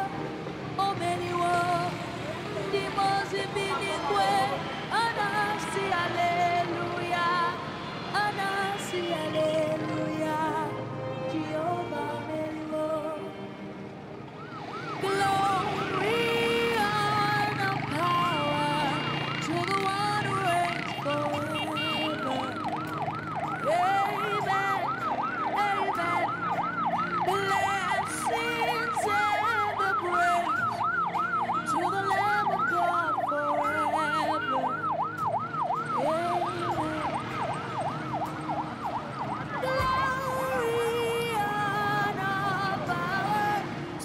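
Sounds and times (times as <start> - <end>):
music: 0.0 - 44.0
ambulance siren yelping: 1.4 - 7.6, 14.3 - 43.6.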